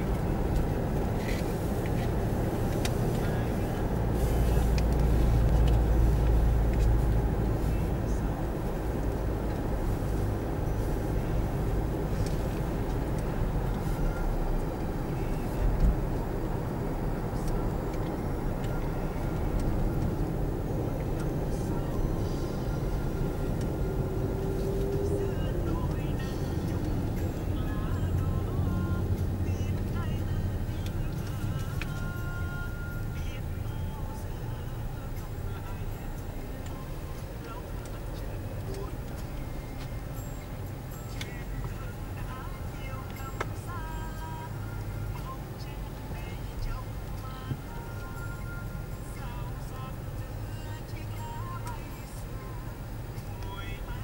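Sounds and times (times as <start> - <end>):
road and engine rumble in car: 0.0 - 54.0.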